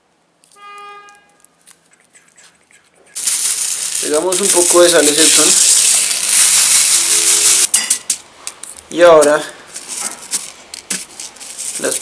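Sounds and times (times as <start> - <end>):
salt crystals crunching on paper: 3.2 - 7.7, 9.8 - 12.0.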